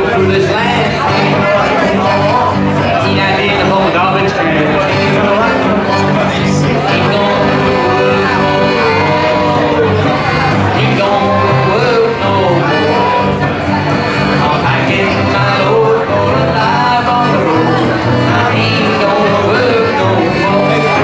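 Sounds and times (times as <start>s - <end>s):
fiddle melody: 0.0s - 21.0s
strummed acoustic guitar: 0.0s - 21.0s
upright bass: 0.0s - 21.0s.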